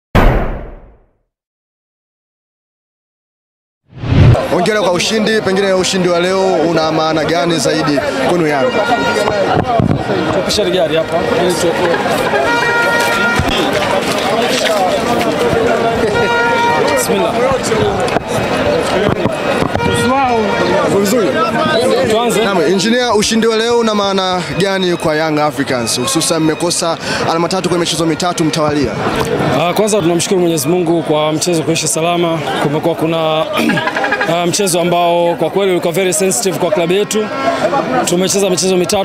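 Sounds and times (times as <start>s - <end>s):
deep booming impact: 0.2s - 1.0s, 4.0s - 4.4s
background chatter: 4.4s - 39.0s.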